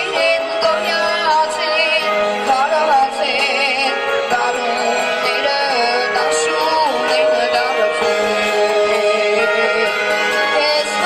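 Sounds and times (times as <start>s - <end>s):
backing music track: 0.0s - 11.0s
boy singing into microphone: 0.0s - 11.0s.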